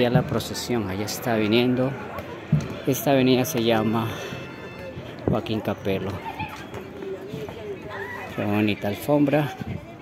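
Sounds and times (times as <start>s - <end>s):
street hum: 0.0s - 10.0s.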